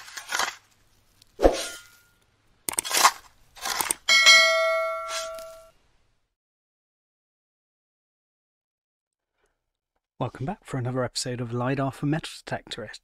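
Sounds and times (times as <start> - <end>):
short swishes: 1.4 - 1.9
bell-like ding: 4.1 - 5.7.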